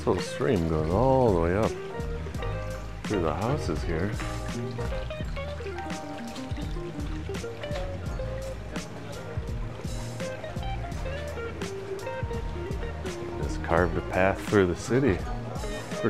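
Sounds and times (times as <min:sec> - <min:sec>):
background music with steady beat: 0:00.0 - 0:16.0.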